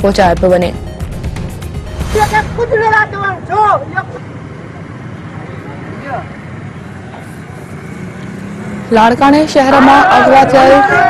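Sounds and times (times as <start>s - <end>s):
outdoor street noise: 0.0s - 11.0s
raised voices: 9.6s - 11.0s.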